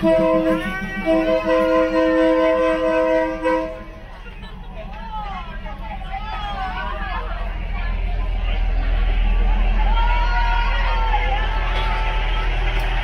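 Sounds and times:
train horn chord: 0.0s - 4.1s
crowd voices: 0.0s - 13.0s
train rumbling past: 0.0s - 13.0s.

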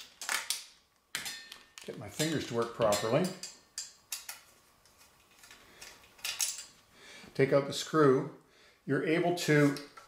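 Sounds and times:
metallic clicks and scraping: 1.2s - 6.8s.

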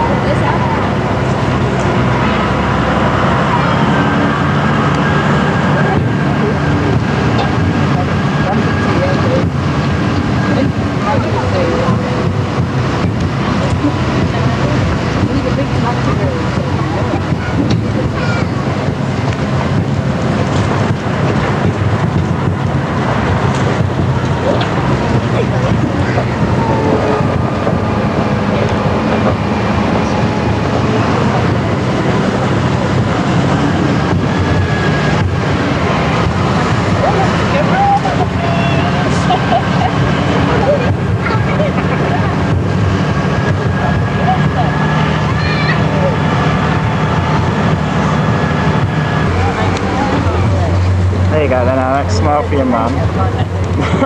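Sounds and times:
wind on microphone: 0.0s - 51.9s
faint voices: 0.0s - 54.0s
vehicle engine droning: 0.0s - 54.0s.

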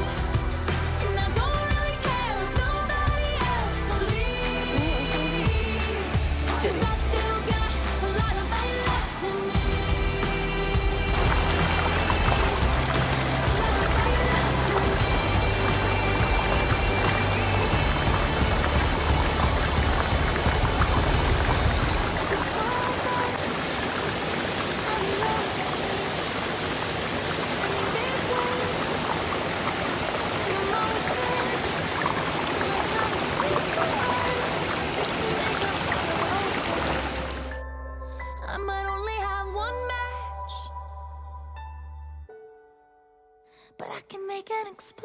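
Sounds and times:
water rushing: 0.0s - 37.5s
background music: 0.0s - 45.0s
low rumble: 9.6s - 22.6s.

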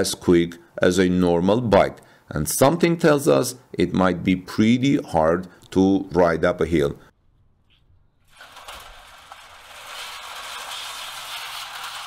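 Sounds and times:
bicycle tracks scraping: 8.2s - 12.0s.

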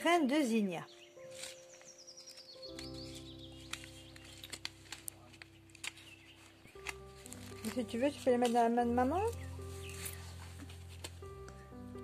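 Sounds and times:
paper seed packet rustling: 1.1s - 11.7s.

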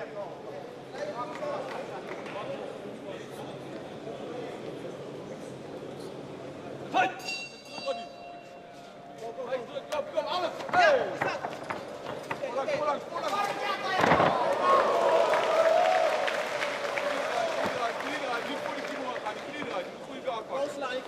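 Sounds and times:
high ringing: 7.1s - 8.8s.

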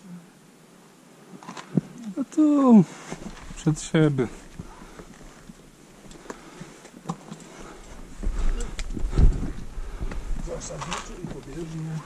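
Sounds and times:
person breathing: 4.5s - 5.4s, 6.0s - 6.8s, 7.4s - 10.4s
low rumble on microphone: 7.9s - 11.6s.

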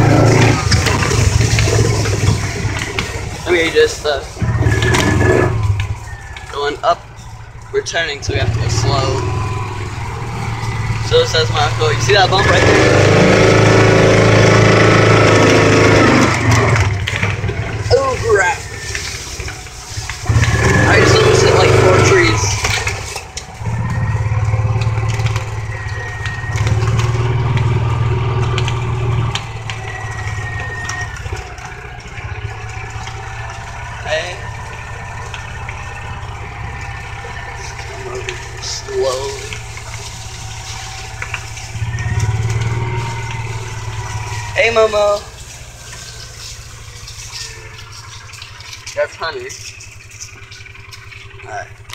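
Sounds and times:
motor whine: 0.0s - 48.9s
ride-on vehicle motor humming: 0.0s - 51.9s.

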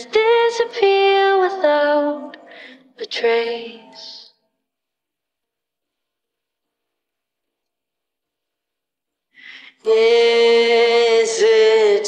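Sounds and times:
female vocal singing: 0.0s - 4.4s, 9.5s - 12.0s.

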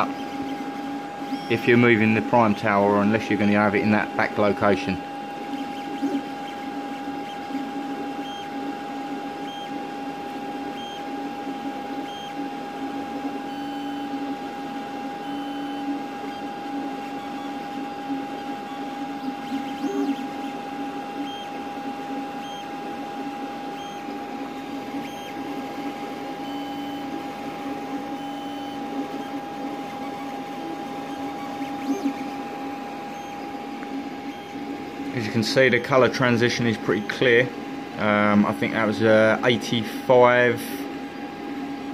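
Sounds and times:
stepper motors whirring: 0.0s - 37.4s
steady high hum: 0.0s - 41.9s.

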